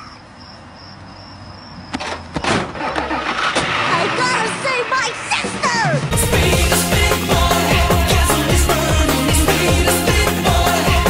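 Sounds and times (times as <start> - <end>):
car engine: 1.9 - 10.6.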